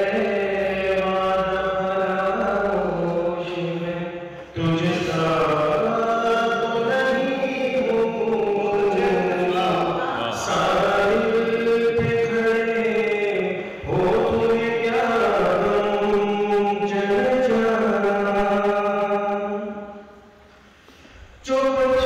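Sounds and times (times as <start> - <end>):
man reciting in a sung style: 0.0 - 20.1, 21.2 - 22.0.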